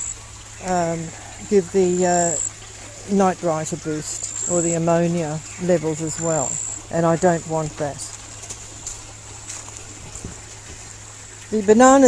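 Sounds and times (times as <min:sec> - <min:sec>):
high-pitched insect trill: 0:00.0 - 0:02.6, 0:03.8 - 0:07.0
low steady hum: 0:00.0 - 0:12.0.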